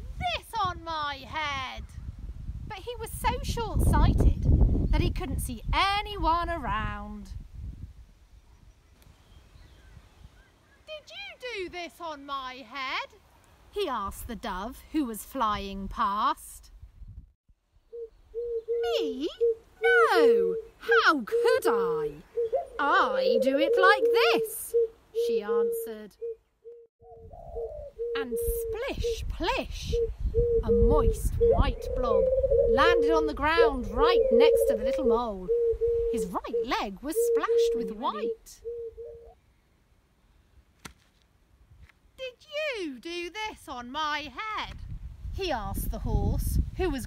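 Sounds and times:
dove cooing: 17.9s - 29.2s, 29.9s - 39.4s.

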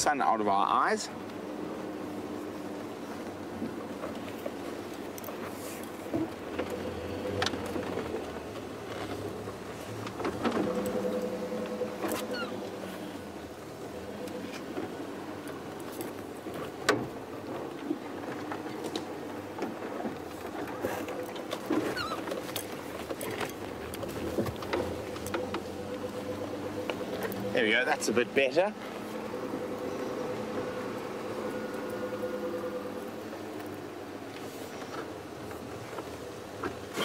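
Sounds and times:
vehicle body rattling over bumps: 6.0s - 33.3s
vehicle engine running: 6.6s - 16.4s, 22.6s - 34.0s.

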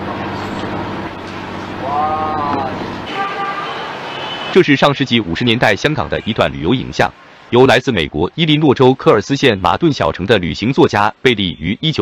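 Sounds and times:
vehicle engine droning: 0.0s - 3.1s
car horn toots: 3.0s - 4.7s.

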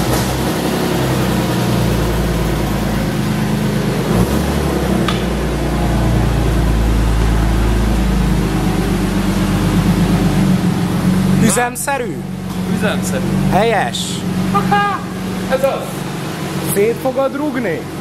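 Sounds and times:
car engine running: 0.0s - 18.0s.

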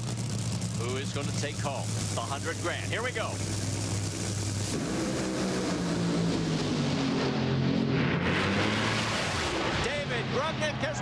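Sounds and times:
dragster engines launching: 0.0s - 11.0s.

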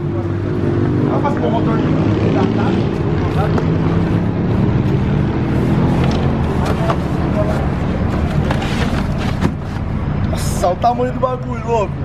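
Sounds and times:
vehicle engine rumbling: 0.0s - 12.0s
cardboard box knocking and scraping: 8.1s - 9.8s.

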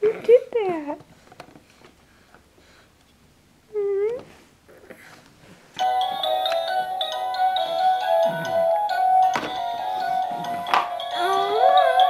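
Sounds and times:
toy beeping melody: 5.8s - 12.0s.

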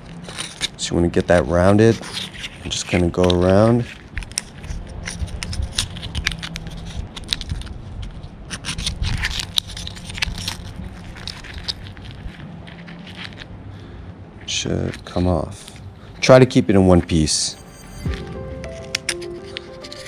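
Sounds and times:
knife scraping mussel shell: 1.7s - 13.6s, 15.0s - 20.0s.

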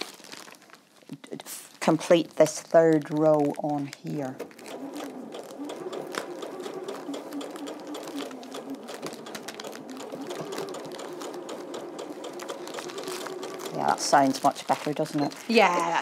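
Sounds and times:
sewing machine stitching: 4.1s - 15.4s.

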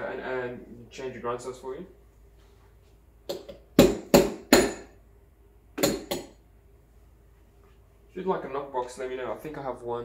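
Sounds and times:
portafilter metallic knocks: 3.3s - 4.9s, 5.8s - 6.4s.

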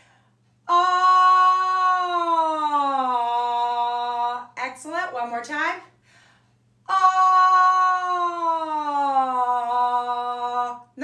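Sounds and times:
woman singing a sliding ah: 0.6s - 4.6s, 6.9s - 11.0s.

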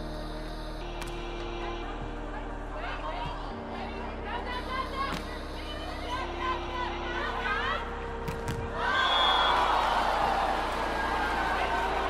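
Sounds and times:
crowd cheering: 8.7s - 12.0s
high whistle tone: 8.9s - 9.8s.

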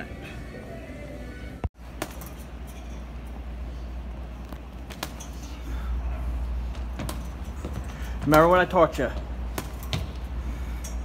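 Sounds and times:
steady low hum: 0.0s - 11.0s
gloves hitting punching bag: 9.4s - 10.3s.

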